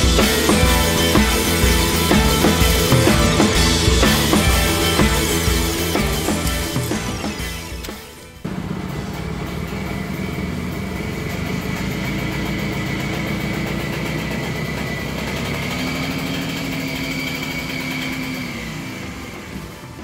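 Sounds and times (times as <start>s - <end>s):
golf cart engine running: 0.0s - 20.0s.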